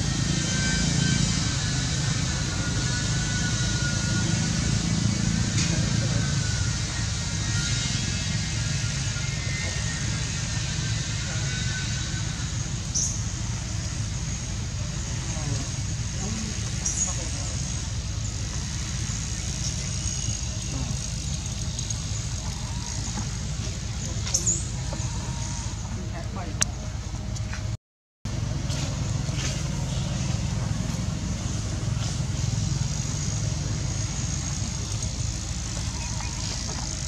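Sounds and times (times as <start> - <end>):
low outdoor rumble: 0.0 - 37.0.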